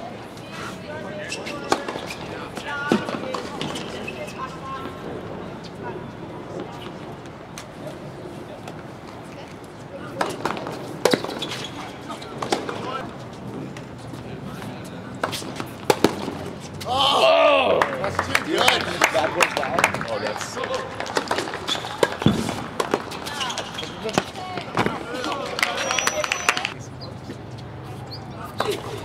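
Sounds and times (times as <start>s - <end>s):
tennis racquets striking ball: 10.1s - 11.6s, 12.4s - 12.9s, 15.2s - 16.6s, 21.0s - 26.7s.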